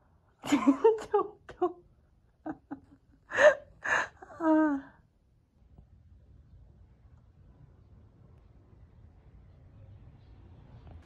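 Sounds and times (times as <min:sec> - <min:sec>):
woman gasping with laughter: 0:03.3 - 0:04.9.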